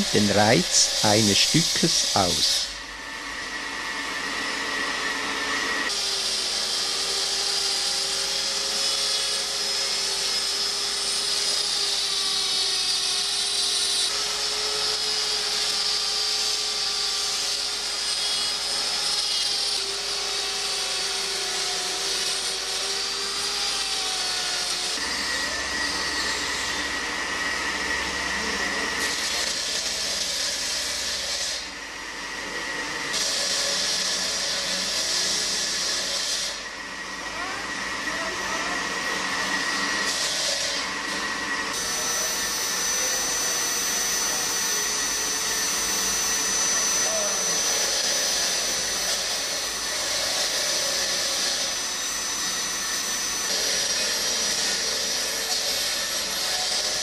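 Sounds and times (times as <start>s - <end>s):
rotary grinder whining: 0.0s - 57.0s
thin high whistle: 41.8s - 48.8s.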